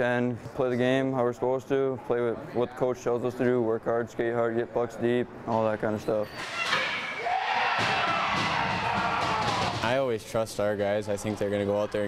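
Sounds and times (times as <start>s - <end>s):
crowd cheering: 7.1s - 9.9s.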